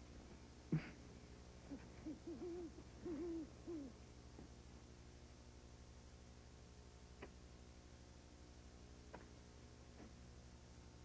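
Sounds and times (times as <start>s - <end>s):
steady low hum: 0.0s - 11.0s
owl hooting: 1.7s - 4.0s.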